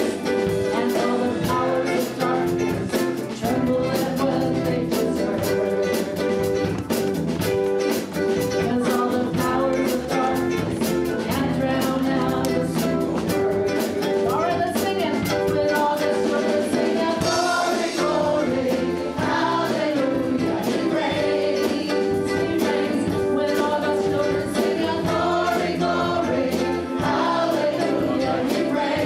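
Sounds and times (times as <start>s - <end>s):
woman singing lead: 0.0s - 6.9s, 7.8s - 29.0s
bass guitar: 0.0s - 29.0s
drum kit: 0.0s - 29.0s
electric and acoustic guitars: 0.0s - 29.0s
keyboard: 0.0s - 29.0s.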